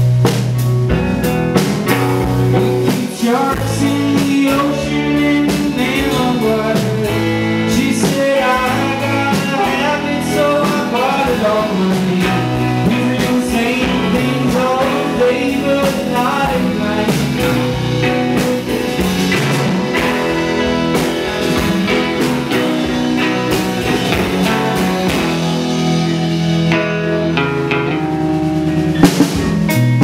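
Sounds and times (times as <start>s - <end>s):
live band with electric guitar: 0.0s - 30.0s
man singing: 2.6s - 25.4s.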